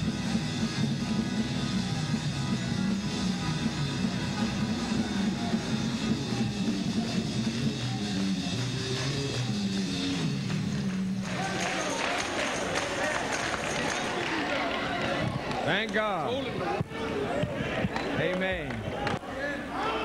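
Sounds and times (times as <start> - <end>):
gospel band music: 0.0 - 19.0
hand-clapping: 7.4 - 16.6, 17.8 - 19.2.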